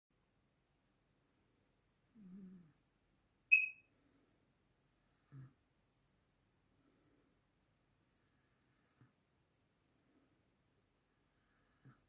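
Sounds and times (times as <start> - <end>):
short high-pitched ping: 3.5 - 3.8.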